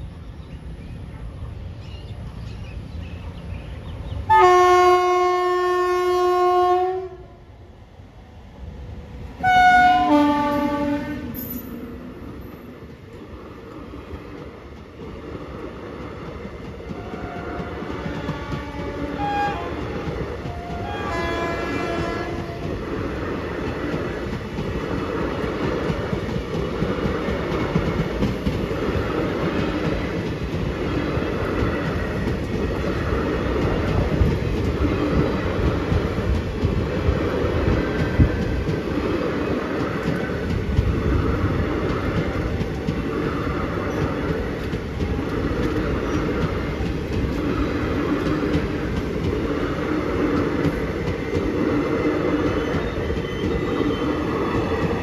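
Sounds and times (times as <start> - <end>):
train rail noise: 0.0 - 55.0
train horn: 4.3 - 7.4, 9.4 - 11.6, 16.9 - 22.8.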